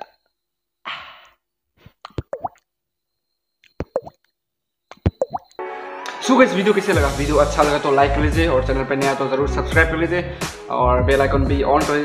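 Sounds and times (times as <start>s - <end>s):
beatboxed water-drop plops: 2.1s - 2.6s, 3.8s - 4.1s, 4.9s - 5.5s
music: 5.6s - 12.0s.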